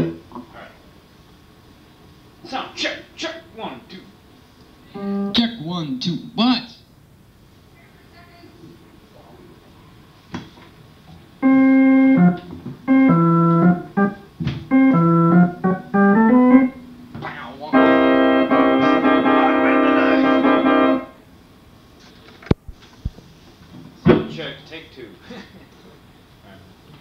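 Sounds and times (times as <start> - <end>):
organ playing notes and chords: 5.0 - 5.5, 11.4 - 21.2.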